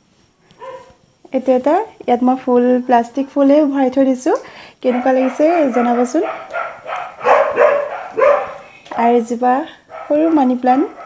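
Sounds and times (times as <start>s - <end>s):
dog barking: 0.6s - 1.0s, 4.9s - 8.8s, 9.9s - 11.0s.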